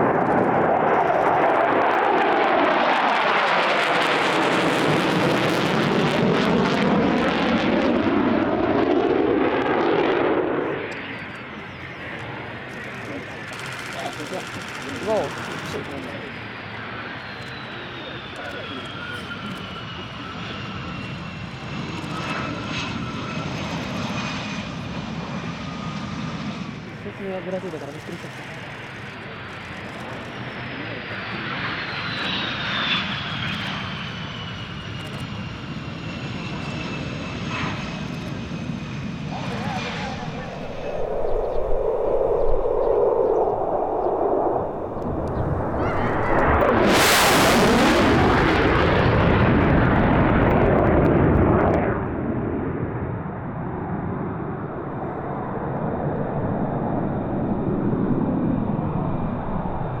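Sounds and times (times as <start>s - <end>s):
jet engines roaring with whine: 0.0s - 60.0s.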